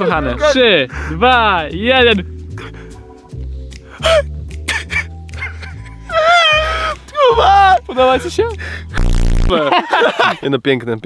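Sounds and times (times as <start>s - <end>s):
men's excited voices: 0.0s - 2.3s, 7.0s - 8.6s
loud low buzz: 9.0s - 9.5s.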